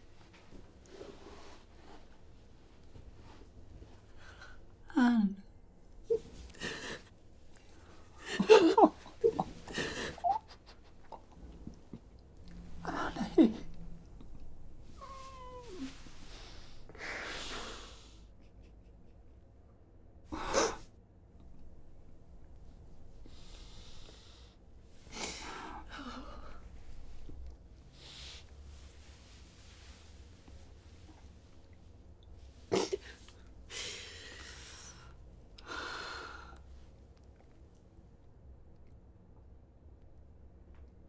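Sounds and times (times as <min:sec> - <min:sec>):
woman sobbing: 0:06.1 - 0:07.1, 0:08.2 - 0:11.0, 0:12.8 - 0:13.8.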